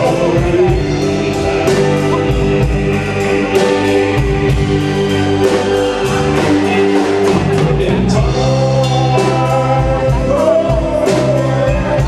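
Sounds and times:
live band playing slow ballad: 0.0 - 12.0.

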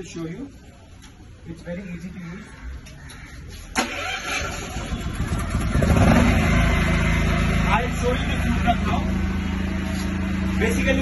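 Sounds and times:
generator engine running: 3.8 - 11.0.

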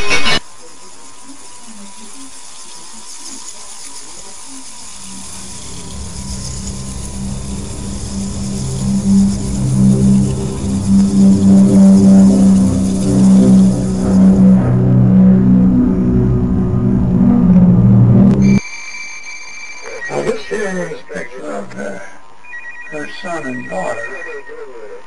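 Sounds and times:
low pulsing horror drone: 5.0 - 18.6.

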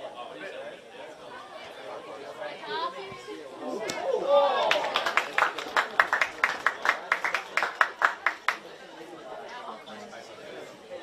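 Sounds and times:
hands clapping: 4.6 - 8.6.

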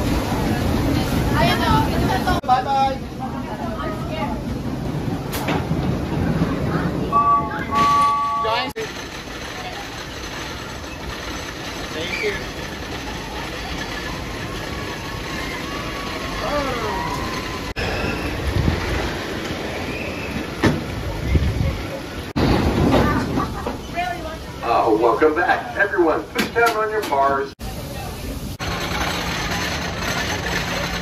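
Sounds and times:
roller coaster climbing lift hill: 0.0 - 31.0.

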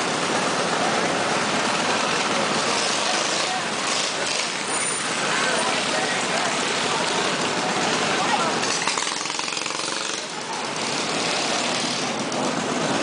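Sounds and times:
crowd chatter: 0.0 - 13.0
minibike engines running: 0.0 - 13.0.

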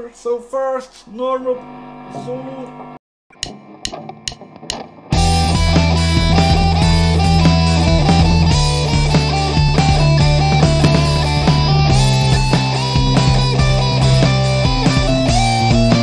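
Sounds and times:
electric guitar solo: 1.6 - 16.0
count-in clicks: 3.3 - 4.9
backing drums and bass: 5.1 - 16.0.

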